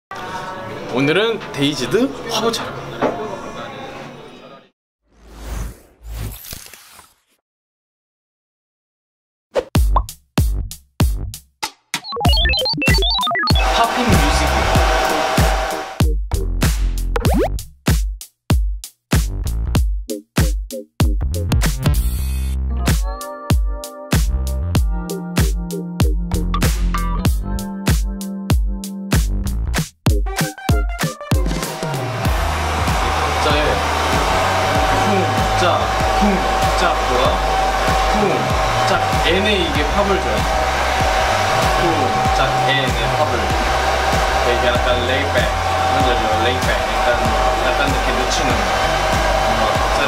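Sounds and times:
background music kick drum: 0:09.8 - 0:11.5, 0:12.2 - 0:22.2, 0:22.9 - 0:46.2
hair dryer blowing: 0:13.6 - 0:16.0, 0:31.5 - 0:50.0.

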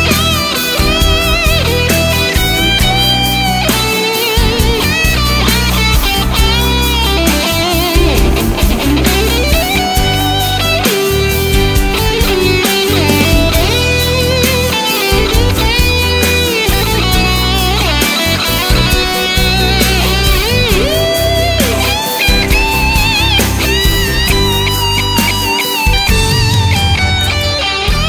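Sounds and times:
bass drums and backing band: 0:00.0 - 0:28.0
electric guitar lead line: 0:00.0 - 0:28.0.

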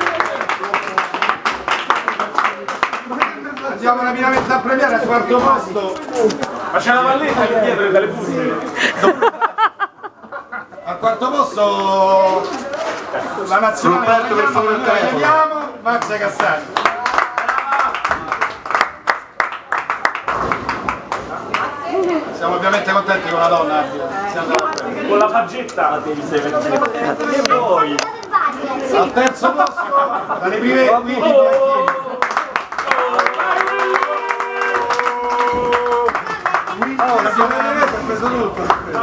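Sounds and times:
people clapping: 0:00.0 - 0:04.7, 0:15.5 - 0:22.2, 0:31.2 - 0:39.0.

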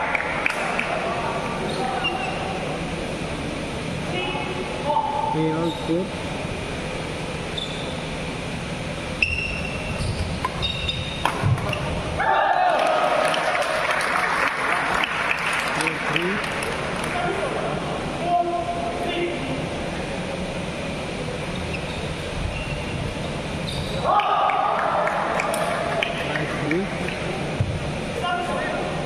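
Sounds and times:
crowd clapping: 0:00.0 - 0:01.1, 0:12.4 - 0:17.2, 0:24.1 - 0:27.3
shoe squeaks on court: 0:07.5 - 0:08.1, 0:09.2 - 0:11.9, 0:21.5 - 0:24.0
crowd cheering and shouting: 0:12.1 - 0:16.3, 0:24.0 - 0:26.5.

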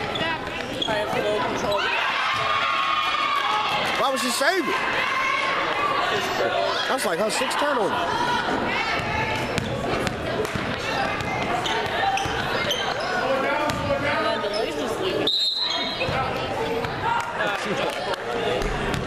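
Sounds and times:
spectators chattering in a hall: 0:00.0 - 0:19.0
basketball bouncing on wooden court: 0:09.0 - 0:12.8, 0:13.6 - 0:14.0.

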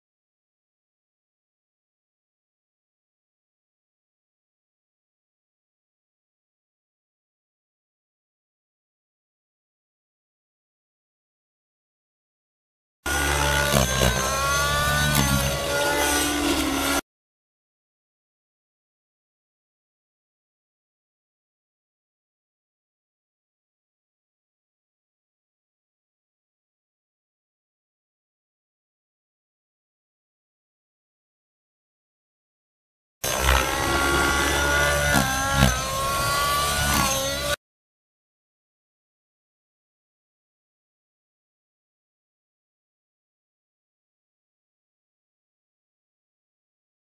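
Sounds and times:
model helicopter rotor whine: 0:13.1 - 0:17.0, 0:33.2 - 0:37.6.

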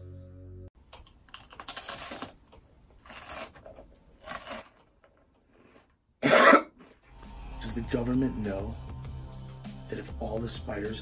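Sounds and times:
man coughing: 0:06.2 - 0:06.8.

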